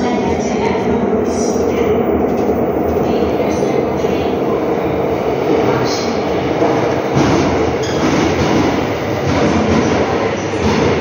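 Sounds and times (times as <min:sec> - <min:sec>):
train wheels rumbling on rail: 0:00.0 - 0:11.0.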